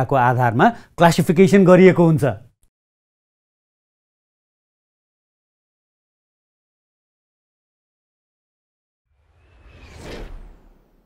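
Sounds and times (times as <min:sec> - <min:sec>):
whoosh sound effect: 0:09.2 - 0:11.0.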